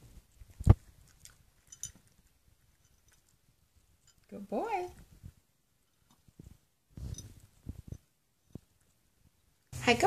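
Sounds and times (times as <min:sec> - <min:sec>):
dog crunching dry kibble: 0:00.2 - 0:03.4.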